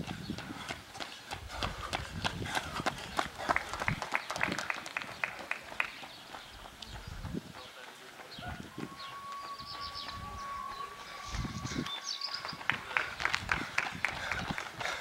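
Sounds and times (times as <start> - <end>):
running footsteps on asphalt: 0.0 - 15.0.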